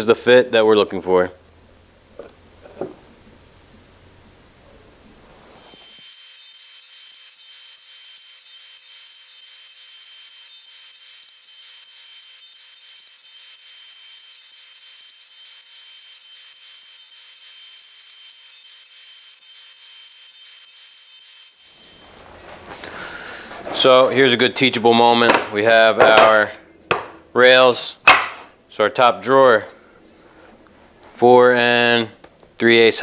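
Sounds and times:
table saw whining: 5.5s - 24.2s.

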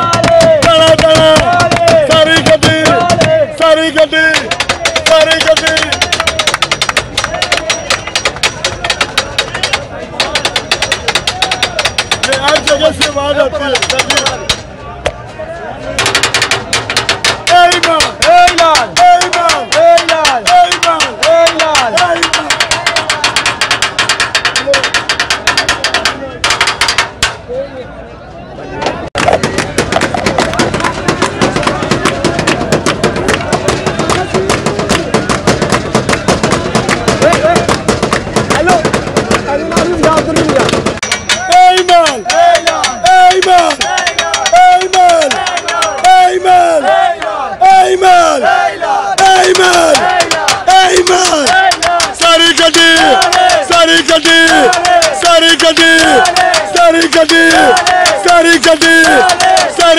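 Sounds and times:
fast metallic clacks on iron frame: 0.0s - 14.8s, 16.0s - 27.5s, 29.2s - 46.4s, 49.2s - 59.9s
vendors shouting hawking chant: 0.0s - 59.9s
sharp clicks: 4.0s - 15.2s, 16.0s - 27.4s.

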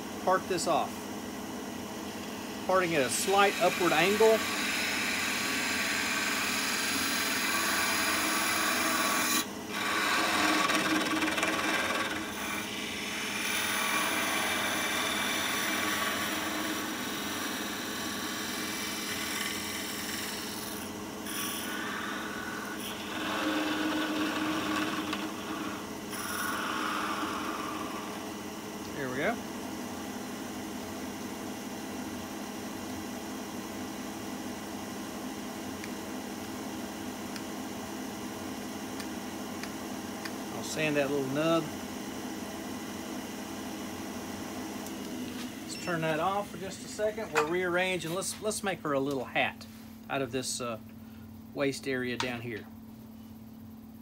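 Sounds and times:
wood lathe running: 2.7s - 29.1s.

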